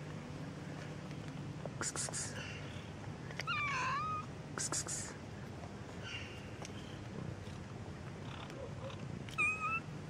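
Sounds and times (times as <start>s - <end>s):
cat meowing: 3.4s - 4.3s, 9.3s - 9.9s.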